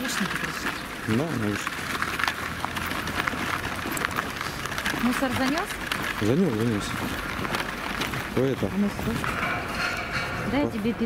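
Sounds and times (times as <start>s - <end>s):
footsteps crunching snow: 0.0s - 11.0s
pram wheels on snow: 0.0s - 11.0s.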